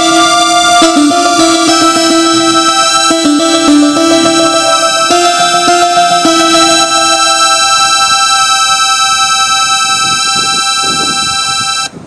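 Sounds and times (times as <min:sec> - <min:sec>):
held synthesizer chord: 0:00.0 - 0:11.9.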